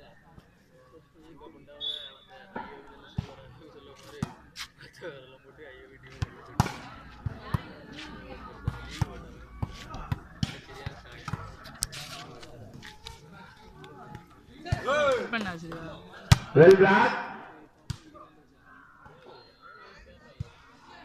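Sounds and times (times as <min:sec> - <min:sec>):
spectators chatting: 0:00.0 - 0:21.0.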